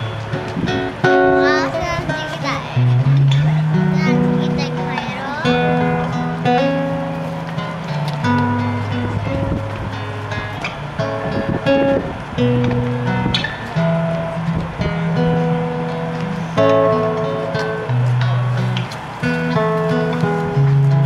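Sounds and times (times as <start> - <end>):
acoustic guitar chords: 0.0 - 21.0.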